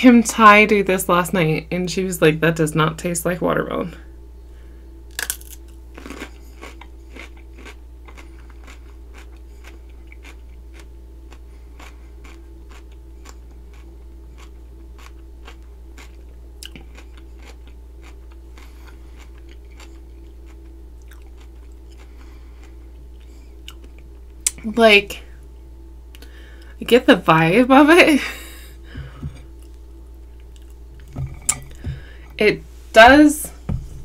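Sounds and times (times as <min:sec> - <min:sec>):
crunchy chewing: 0:05.1 - 0:24.6, 0:29.1 - 0:32.1.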